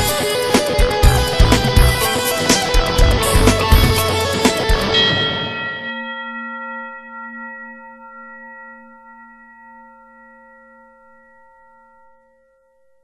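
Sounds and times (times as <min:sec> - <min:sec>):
electric guitar note ringing: 0:00.0 - 0:10.4.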